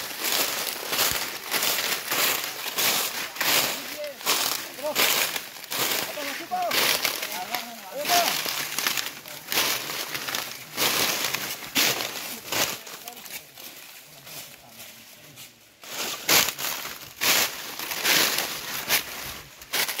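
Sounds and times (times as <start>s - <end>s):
footsteps crunching on dry leaves: 0.0s - 20.0s.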